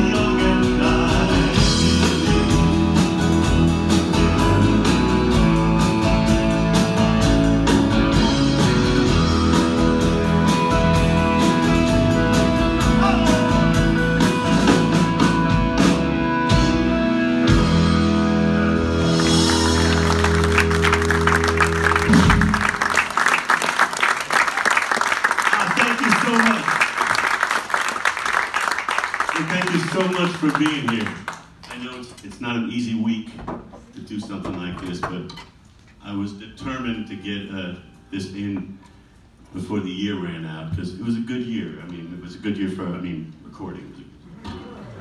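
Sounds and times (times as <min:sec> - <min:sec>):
live band playing: 0:00.0 - 0:27.3
audience applause: 0:19.1 - 0:32.0.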